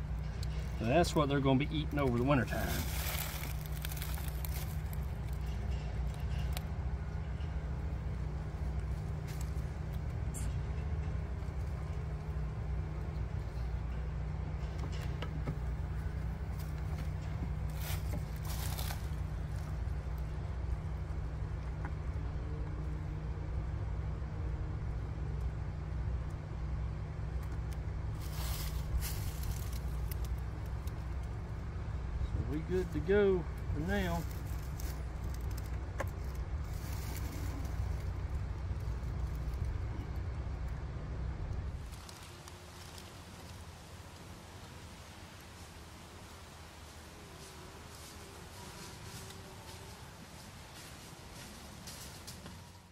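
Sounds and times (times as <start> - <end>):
steady low rumble: 0.0 - 47.2
steady low hum: 0.0 - 52.9.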